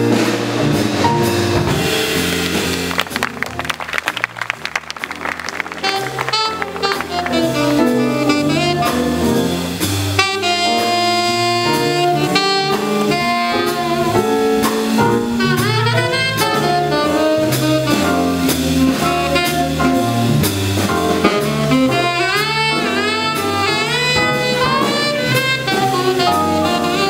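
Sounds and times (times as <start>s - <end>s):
busy drumming: 0.0s - 27.0s
jazz combo playing: 0.0s - 27.0s
saxophone melody: 5.4s - 20.3s, 21.2s - 27.0s.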